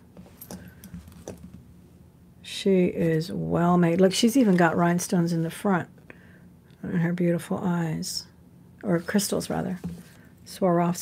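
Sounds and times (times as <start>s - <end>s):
metal jewelry clinking: 0.2s - 1.5s.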